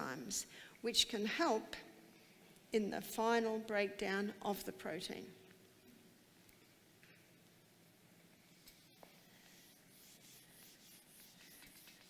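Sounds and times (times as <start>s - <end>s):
eraser rubbing on whiteboard: 8.5s - 12.0s.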